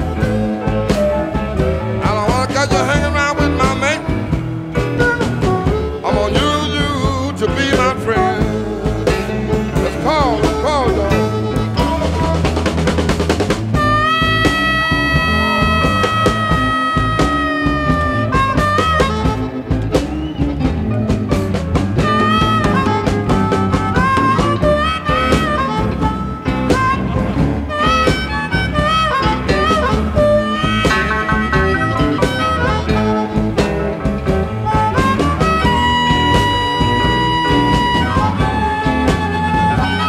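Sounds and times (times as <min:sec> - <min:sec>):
blues band with drums: 0:00.0 - 0:40.0
harmonica solo: 0:00.0 - 0:40.0.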